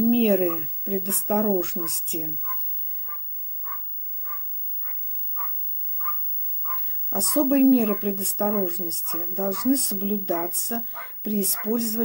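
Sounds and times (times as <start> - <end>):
dog barking faintly: 7.8 - 9.9, 10.9 - 12.0.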